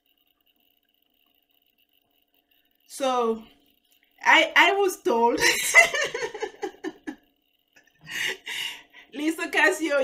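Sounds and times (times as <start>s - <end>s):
faint steady hum: 0.0s - 10.0s
voice: 2.9s - 3.5s, 4.2s - 6.4s, 9.1s - 10.0s.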